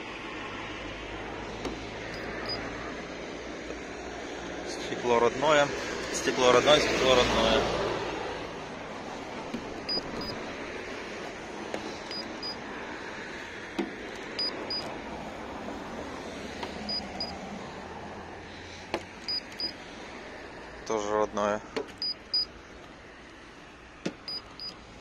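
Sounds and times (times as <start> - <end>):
short high beeps: 9.9 - 10.4, 19.3 - 19.7, 24.3 - 24.8.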